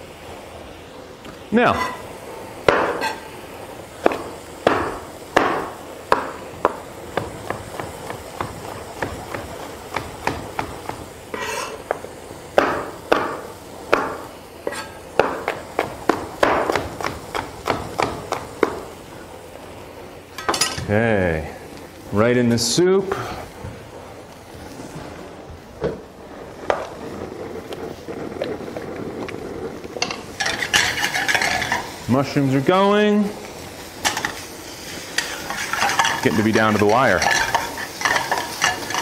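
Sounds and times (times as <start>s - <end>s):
knife chopping on cutting board: 15.2s - 18.8s.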